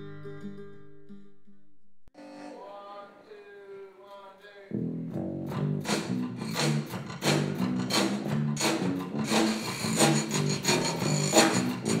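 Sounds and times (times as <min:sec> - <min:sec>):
live band playing: 0:05.5 - 0:12.0
rubboard scraping: 0:06.5 - 0:12.0.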